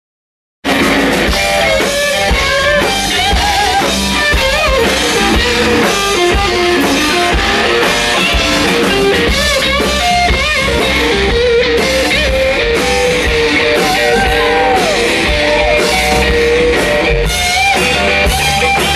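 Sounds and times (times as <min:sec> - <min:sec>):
drum kit: 0:00.6 - 0:18.9
electric guitar with bent notes: 0:00.6 - 0:18.9.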